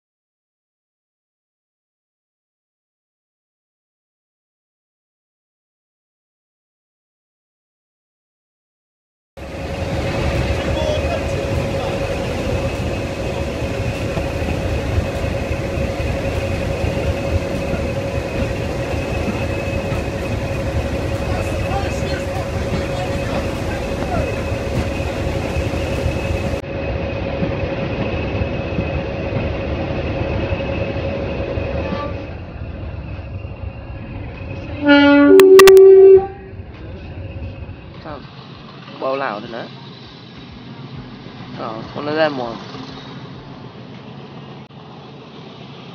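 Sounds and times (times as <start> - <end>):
diesel locomotive engine whining: 9.4 - 45.9
two-tone train horn: 31.8 - 32.4, 34.7 - 36.6.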